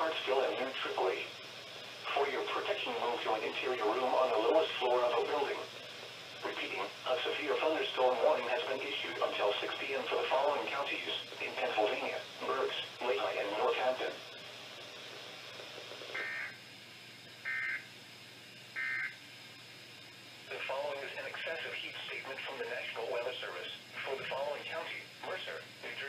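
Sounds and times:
synthesized voice speaking: 0:00.0 - 0:01.3, 0:02.0 - 0:05.7, 0:06.4 - 0:14.2
digital data tone bursts: 0:16.1 - 0:16.6.

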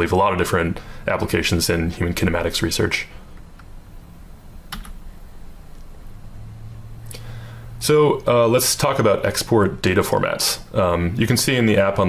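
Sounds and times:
low hum: 0:00.0 - 0:09.4.

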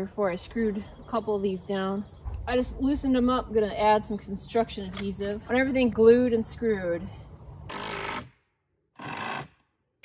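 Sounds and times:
power drill driving screws: 0:07.7 - 0:08.3, 0:09.0 - 0:09.6.

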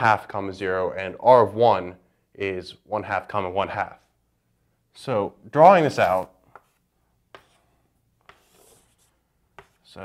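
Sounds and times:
chalk scratching on blackboard: 0:05.8 - 0:10.0
chalk tapping on blackboard: 0:06.1 - 0:10.0.

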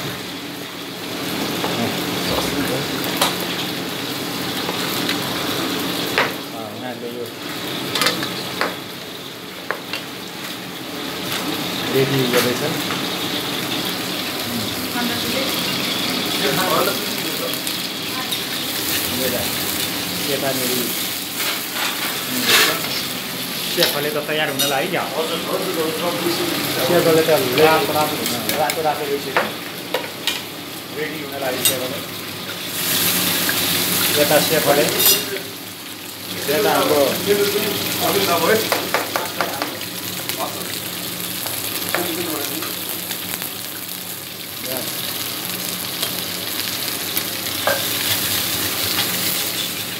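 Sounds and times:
food sizzling in a pan: 0:00.0 - 0:49.9
knife knocking on cutting board: 0:38.7 - 0:39.7.

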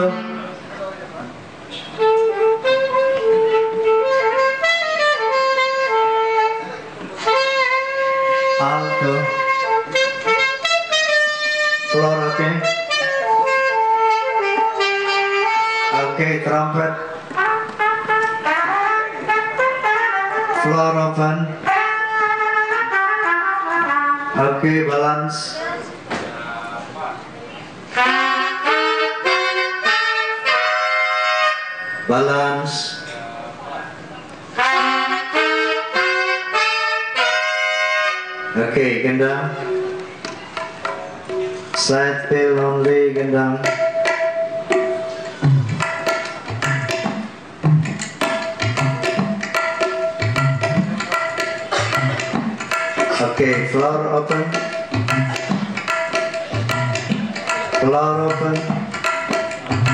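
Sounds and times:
alto saxophone playing short notes: 0:00.0 - 0:00.7, 0:01.7 - 0:24.5, 0:27.9 - 0:32.1, 0:34.5 - 0:40.1, 0:48.6 - 0:49.2, 0:50.0 - 0:52.4.

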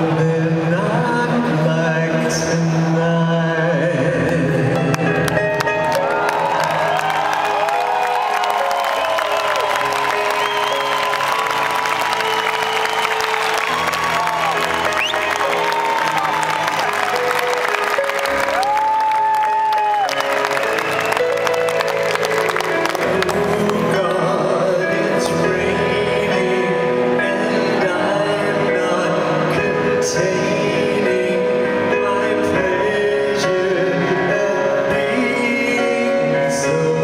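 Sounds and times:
man singing: 0:00.0 - 0:05.4, 0:22.7 - 0:37.0
crowd cheering and applause: 0:04.7 - 0:24.9.

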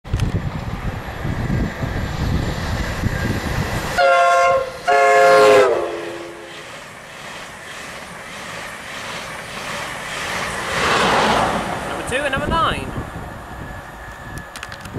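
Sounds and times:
train coaches rushing past: 0:00.1 - 0:14.9
two-tone train horn blasts: 0:04.0 - 0:06.5.

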